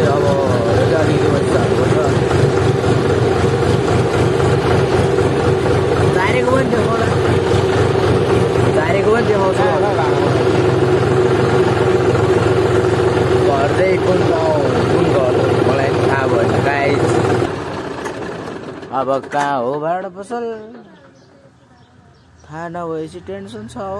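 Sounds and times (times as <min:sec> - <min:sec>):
tractor diesel engine running: 0:00.0 - 0:22.4.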